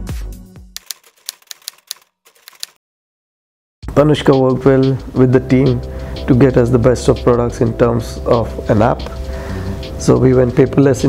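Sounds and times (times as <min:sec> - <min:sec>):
typewriter key clicks: 0:00.8 - 0:02.8.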